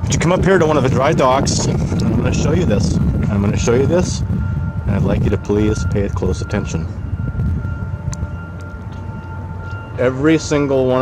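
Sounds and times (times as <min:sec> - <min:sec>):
low outdoor rumble: 0:00.0 - 0:11.0
faint high whine: 0:02.2 - 0:11.0.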